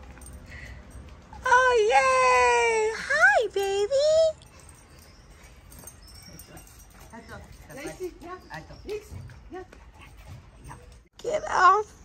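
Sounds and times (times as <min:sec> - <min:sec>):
dog whining and yipping: 0:04.3 - 0:11.0.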